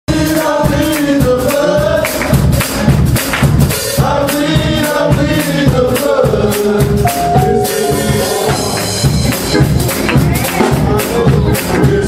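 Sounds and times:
band with drums: 0.1 - 12.0
gospel vocal group singing: 0.1 - 12.0.

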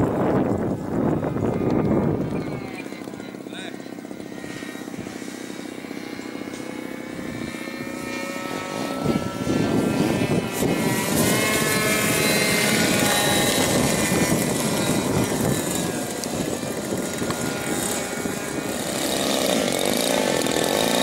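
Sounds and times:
model aeroplane motor and propeller: 0.0 - 21.0.

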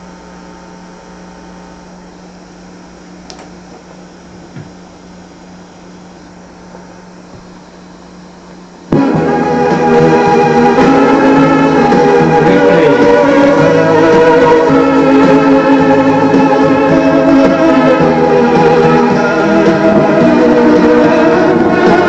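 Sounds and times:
boombox hum and hiss: 0.0 - 22.0
music from speakers: 8.9 - 22.0.

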